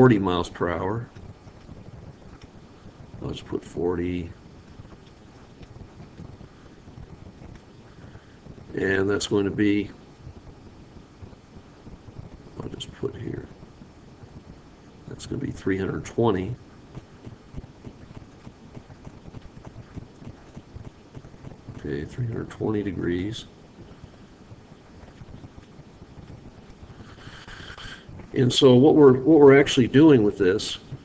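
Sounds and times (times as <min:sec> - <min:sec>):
microphone background hiss: 0:00.0 - 0:31.0
soft ticks: 0:04.9 - 0:06.3
stylus tapping on pen tablet: 0:16.9 - 0:21.8.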